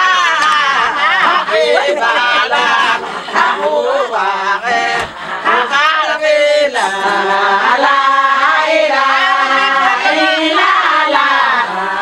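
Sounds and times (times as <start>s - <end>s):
women singing a chant: 0.0s - 12.0s.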